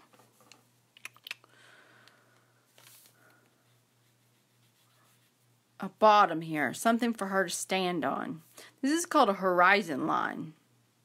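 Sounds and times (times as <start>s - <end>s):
brush scrubbing wet paint: 3.7s - 5.5s.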